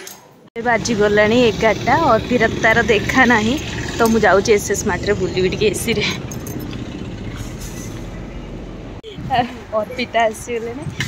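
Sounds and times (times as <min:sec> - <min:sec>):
road traffic rumble: 0:00.6 - 0:11.0.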